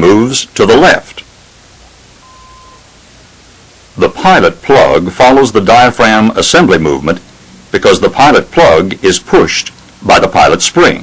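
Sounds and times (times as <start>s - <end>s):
recording hiss: 0.0s - 11.0s
faint beep: 2.2s - 2.9s.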